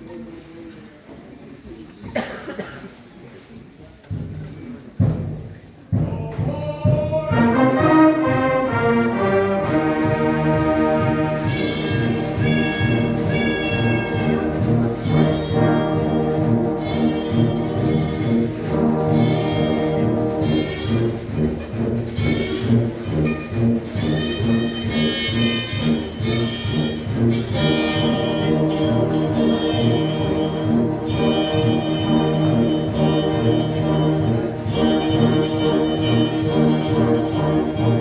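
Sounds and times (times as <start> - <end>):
concert band playing: 5.0 - 38.0.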